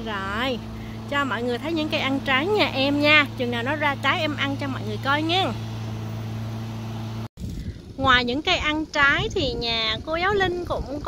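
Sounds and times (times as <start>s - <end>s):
lawn mower engine running: 0.0s - 11.0s
low uneven rumble: 0.0s - 11.0s.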